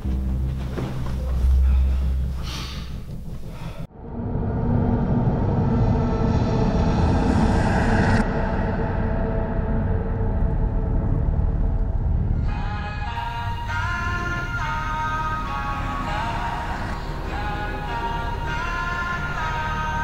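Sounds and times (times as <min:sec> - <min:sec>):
dense drone of steady tones: 0:00.0 - 0:20.0
low rumble: 0:00.0 - 0:20.0.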